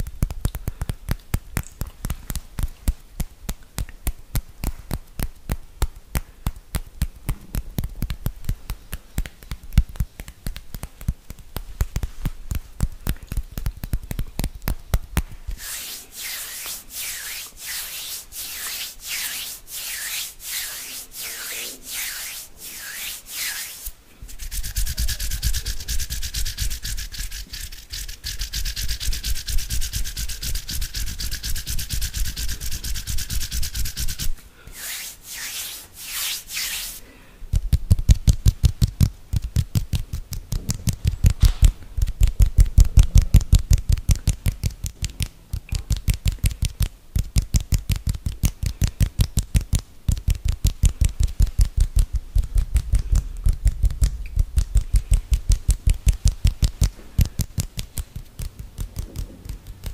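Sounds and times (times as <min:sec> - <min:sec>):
rubbing on microphone with thuds: 0:04.4 - 0:37.0, 0:37.6 - 0:59.9
hand swishing at microphone: 0:06.4 - 0:37.0, 0:50.2 - 0:59.9.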